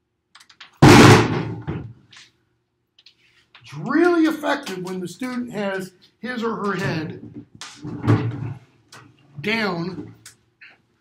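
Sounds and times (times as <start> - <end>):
hard slam on a table: 0.8 - 1.9.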